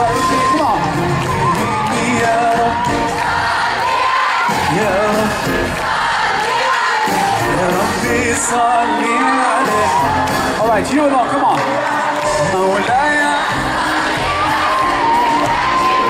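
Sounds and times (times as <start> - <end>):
man singing into a microphone: 1.5 - 3.0, 4.6 - 5.7, 7.4 - 13.6
live band with drums and guitar: 4.4 - 5.8, 7.0 - 8.7, 9.6 - 16.0.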